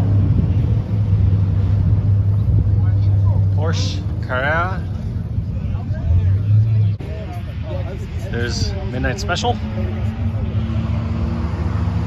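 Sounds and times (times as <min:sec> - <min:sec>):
wind on microphone: 0:00.0 - 0:03.0
low engine drone: 0:00.0 - 0:12.0.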